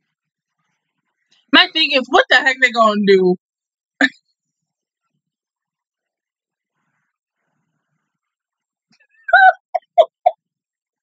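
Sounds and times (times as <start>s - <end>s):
woman laughing: 9.3s - 10.3s.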